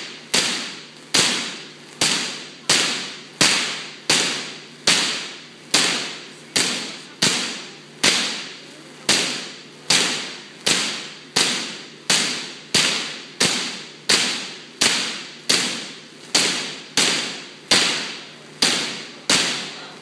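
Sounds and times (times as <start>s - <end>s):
electric sparks cracking: 0.0s - 20.0s.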